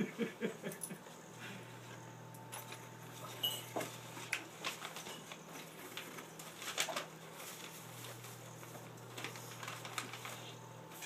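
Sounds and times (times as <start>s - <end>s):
low steady hum: 0.0s - 11.0s
paper and cardboard crinkling: 2.6s - 11.0s.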